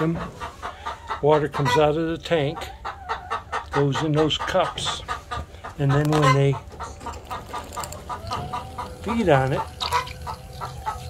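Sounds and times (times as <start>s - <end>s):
hens clucking: 0.0s - 11.0s
water pump hum: 8.0s - 11.0s.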